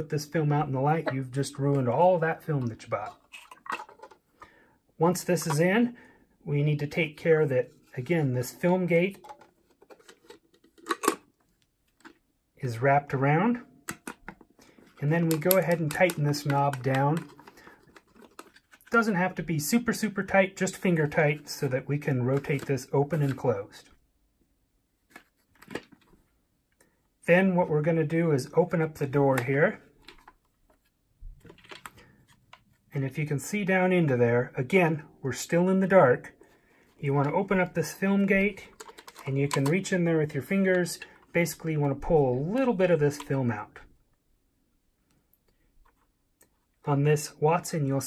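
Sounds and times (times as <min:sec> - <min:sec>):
plastic lid rubbing and clicking: 0:37.2 - 0:39.9.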